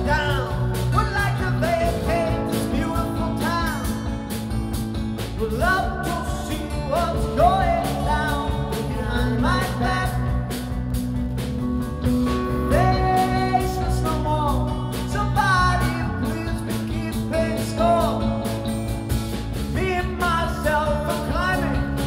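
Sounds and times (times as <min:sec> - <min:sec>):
live rock band playing: 0:00.0 - 0:22.0
sliding guitar melody: 0:00.0 - 0:22.0
strummed guitar rhythm: 0:00.0 - 0:22.0.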